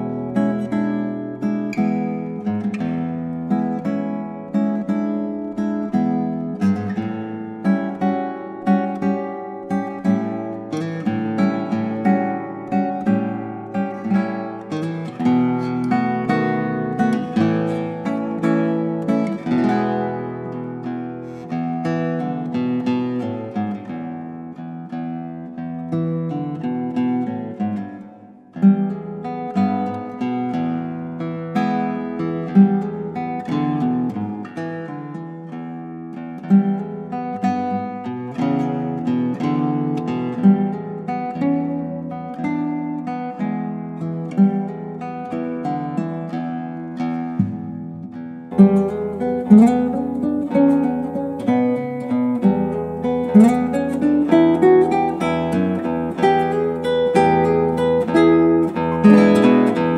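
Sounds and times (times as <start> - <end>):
classical guitar fingerpicking blues: 0.0 - 59.9.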